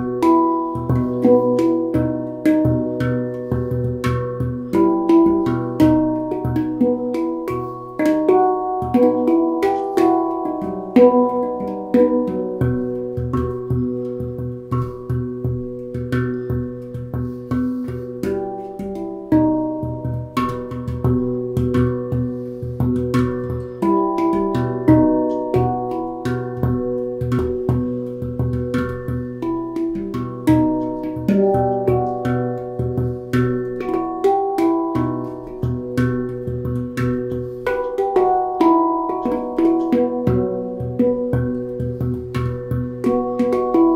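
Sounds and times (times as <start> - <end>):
handpan melody: 0.0 - 43.9.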